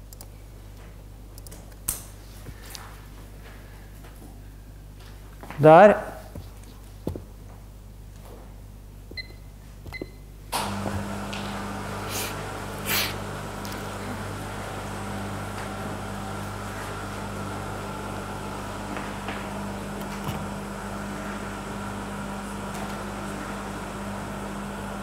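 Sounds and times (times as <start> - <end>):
machine hum and fan noise: 0.0 - 25.0.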